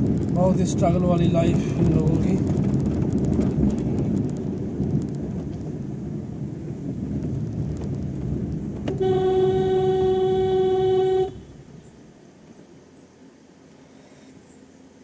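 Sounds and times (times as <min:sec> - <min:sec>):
car road and engine rumble: 0:00.0 - 0:15.0
vehicle horn blast: 0:08.9 - 0:11.6.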